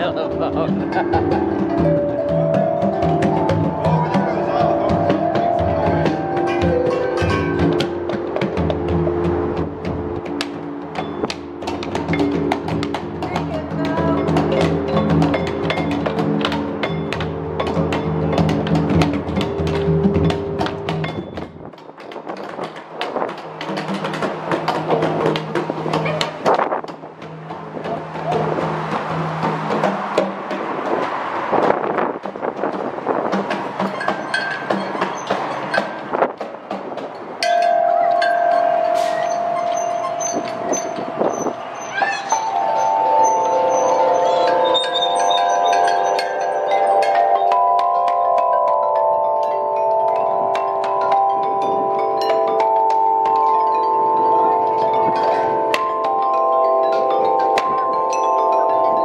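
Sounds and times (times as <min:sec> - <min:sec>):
tubular chime ringing: 0:00.0 - 0:10.3, 0:37.4 - 0:59.0
irregular knocks: 0:00.0 - 0:59.0
metallophone bars ringing: 0:33.8 - 0:36.2, 0:37.4 - 0:59.0.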